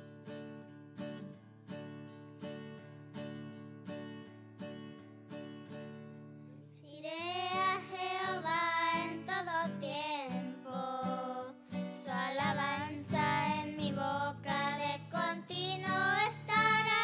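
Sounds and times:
acoustic guitar strumming: 0.0 - 17.0
children singing: 6.9 - 17.0.

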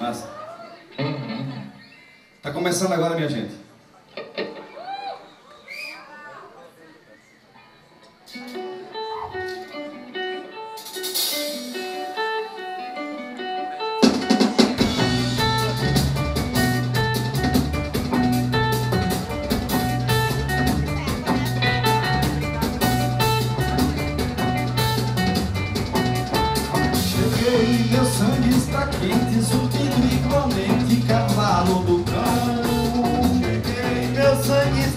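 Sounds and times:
live band playing: 0.0 - 2.2, 8.2 - 34.9
guitar picking a melody: 8.3 - 34.9.

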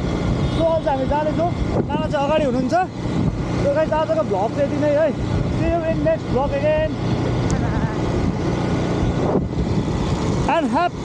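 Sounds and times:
motorbike engine running: 0.0 - 11.0
wind rushing over microphone: 0.0 - 11.0.

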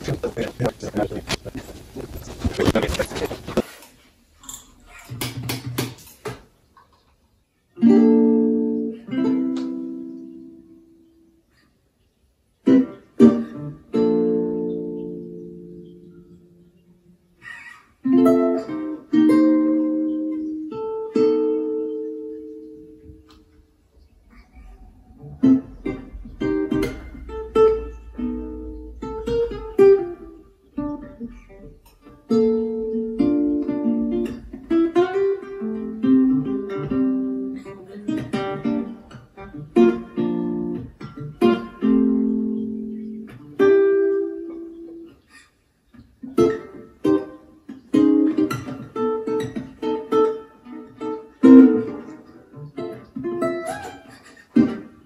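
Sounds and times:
acoustic guitar chords: 7.8 - 11.4, 12.6 - 17.4, 18.0 - 45.2, 46.1 - 55.0.

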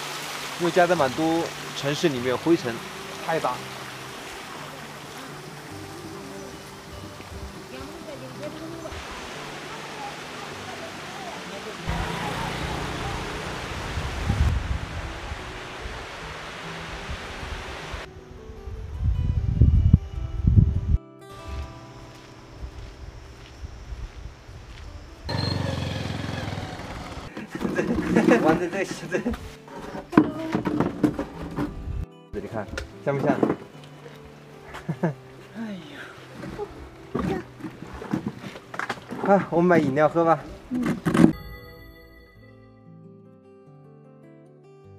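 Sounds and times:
steady outdoor hiss: 0.0 - 29.9, 31.2 - 40.8
quiet background music: 0.4 - 12.9, 14.8 - 25.3, 27.4 - 44.9
voices: 7.6 - 13.6
wind rumble on microphone: 13.2 - 21.0.

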